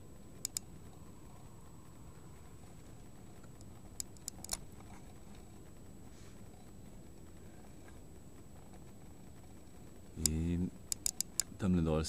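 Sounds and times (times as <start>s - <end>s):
faint low background noise: 0.0s - 12.0s
thin high whine: 0.0s - 12.0s.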